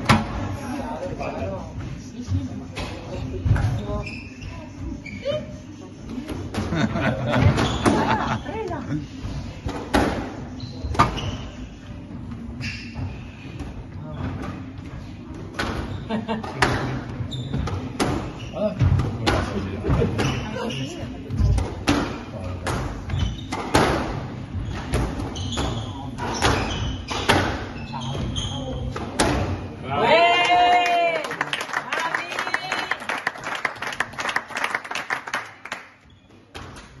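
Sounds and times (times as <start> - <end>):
squash ball smacking racket and walls: 9.6 - 11.4, 15.4 - 20.7, 21.3 - 29.7.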